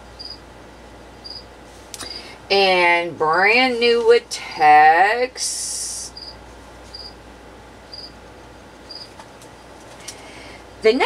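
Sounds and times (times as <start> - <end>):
cricket chirping: 0.2 - 0.4, 1.2 - 1.4, 6.2 - 7.2, 7.9 - 8.2, 8.9 - 9.1.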